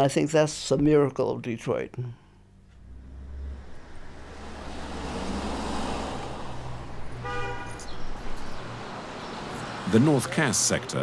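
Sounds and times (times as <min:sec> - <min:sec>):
vehicle driving past: 0:02.6 - 0:10.0
car horn toot: 0:07.1 - 0:08.0.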